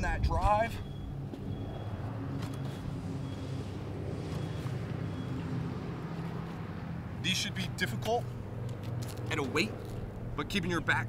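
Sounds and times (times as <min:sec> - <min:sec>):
low mechanical engine hum: 0:00.0 - 0:11.0.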